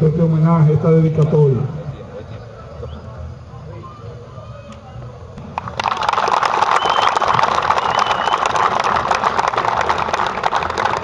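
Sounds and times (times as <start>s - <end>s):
crowd applauding: 5.4s - 11.0s.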